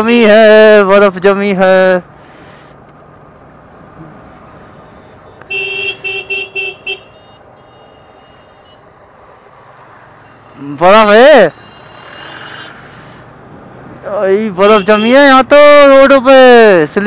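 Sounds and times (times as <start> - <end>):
motorcycle ride noise: 0.0 - 17.0
vehicle horn short toots: 5.4 - 8.5.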